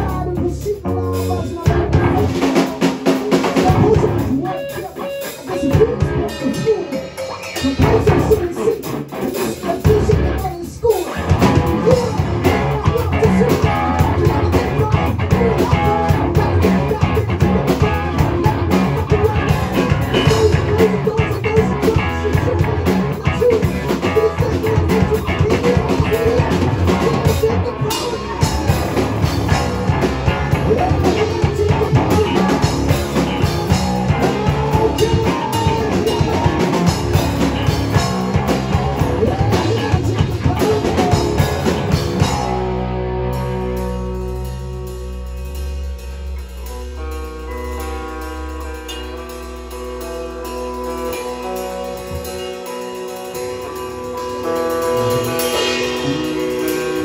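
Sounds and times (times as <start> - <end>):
drum kit: 0.0 - 57.0
electric bass: 0.0 - 57.0
electric guitar: 0.0 - 57.0.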